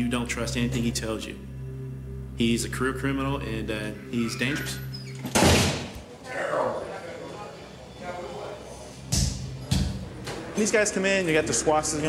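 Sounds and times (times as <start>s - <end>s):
metal cell door clanging shut: 4.6s - 6.0s.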